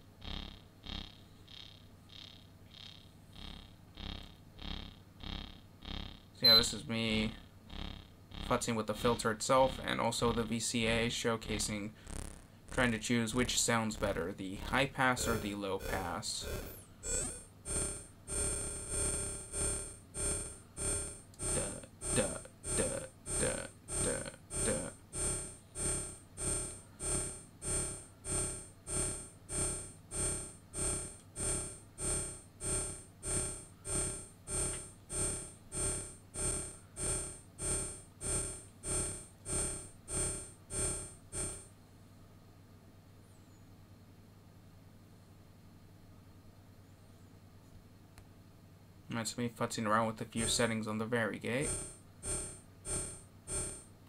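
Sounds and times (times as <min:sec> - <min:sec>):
pulsing synthesizer bass note: 0:00.0 - 0:41.7, 0:50.4 - 0:50.8, 0:51.5 - 0:54.0
faint low hum: 0:00.0 - 0:54.0.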